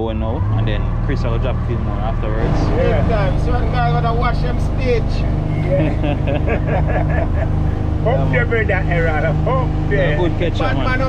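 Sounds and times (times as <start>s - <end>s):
boat engine drone: 0.0s - 11.0s
man laughing in bursts: 5.7s - 7.9s.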